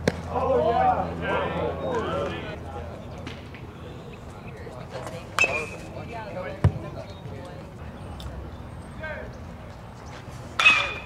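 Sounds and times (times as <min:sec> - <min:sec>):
voices calling out: 0:00.0 - 0:11.0
metal bat hitting ball: 0:10.6 - 0:11.0.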